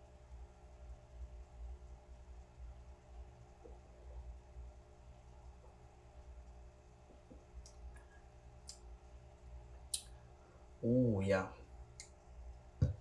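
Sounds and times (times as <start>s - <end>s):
low room hum: 0.0s - 13.0s
mouth clicks and lip smacks: 7.3s - 8.9s, 9.8s - 10.2s
person speaking: 10.8s - 11.6s.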